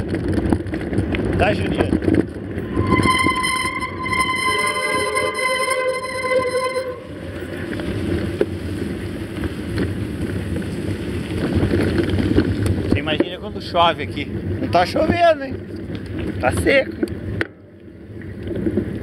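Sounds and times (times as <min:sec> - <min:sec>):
wind: 0:00.0 - 0:19.0
high-pitched squeal: 0:02.5 - 0:08.4
bike tyre rumble: 0:07.3 - 0:13.2.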